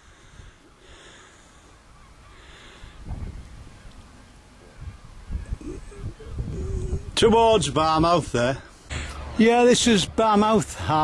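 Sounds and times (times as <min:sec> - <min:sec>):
distant bird calls: 0:00.0 - 0:11.0.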